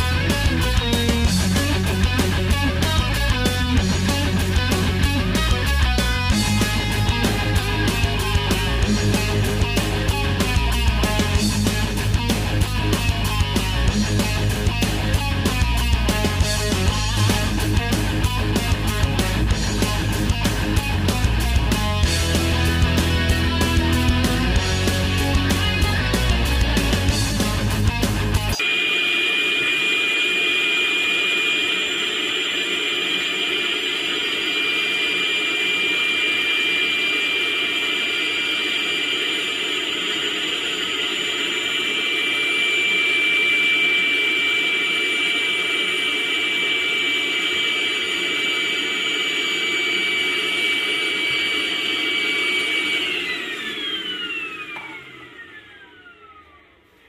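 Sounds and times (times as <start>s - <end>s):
music: 0.0s - 28.7s
cordless vacuum whining: 28.5s - 57.0s.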